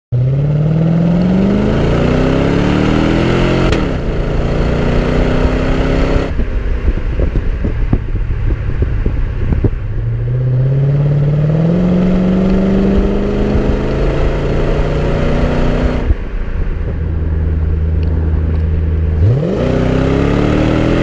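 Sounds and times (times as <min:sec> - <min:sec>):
car engine revving while driving: 0:00.2 - 0:21.0.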